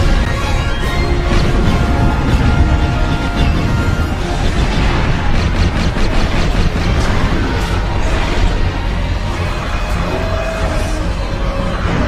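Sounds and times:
sharp blaster shots: 0:00.0 - 0:09.5
heavy space battle rumble: 0:00.0 - 0:12.0
soundtrack music: 0:00.0 - 0:12.0.

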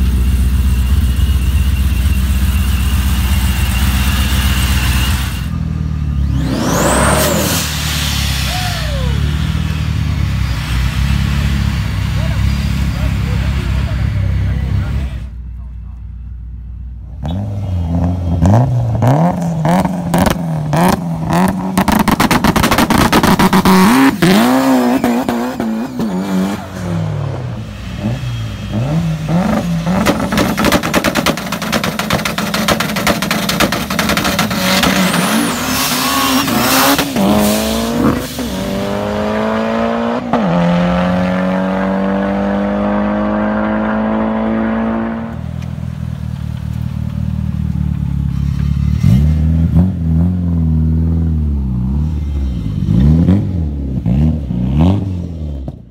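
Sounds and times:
car engines revving: 0:00.0 - 0:55.9.

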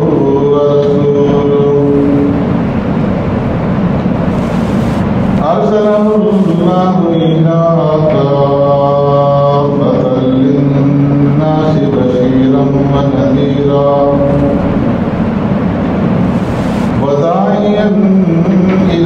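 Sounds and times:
man chanting in long notes: 0:00.0 - 0:02.5, 0:05.4 - 0:14.9, 0:17.0 - 0:19.0.

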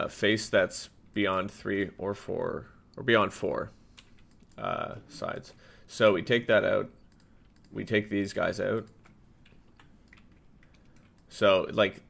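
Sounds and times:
keyboard and mouse clicks: 0:03.9 - 0:04.6, 0:07.1 - 0:07.8, 0:08.6 - 0:11.4.

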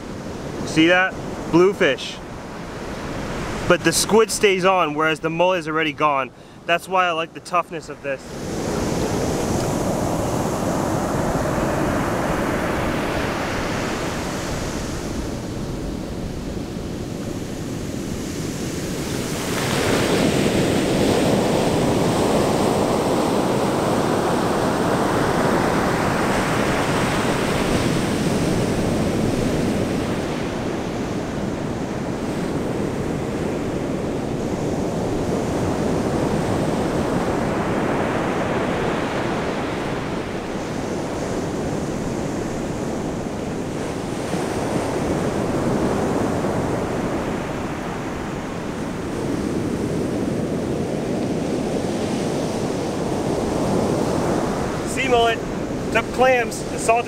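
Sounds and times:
ocean surf breaking: 0:00.0 - 0:57.0.

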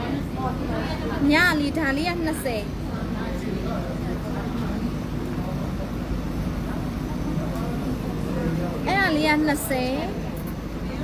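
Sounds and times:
background chatter: 0:00.0 - 0:11.0
low room rumble: 0:00.0 - 0:11.0.

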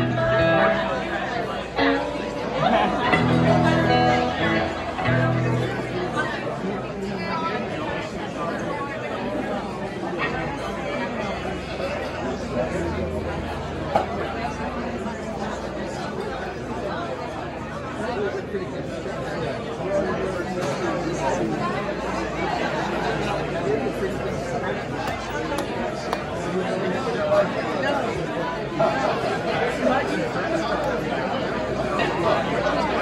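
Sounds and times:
live band playing: 0:00.0 - 0:06.3
loud guitar chord: 0:00.0 - 0:06.8, 0:12.2 - 0:15.6
audience chatter: 0:00.0 - 0:33.0.

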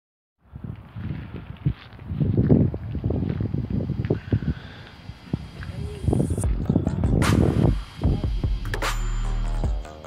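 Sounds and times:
wind buffeting microphone: 0:00.4 - 0:08.4.

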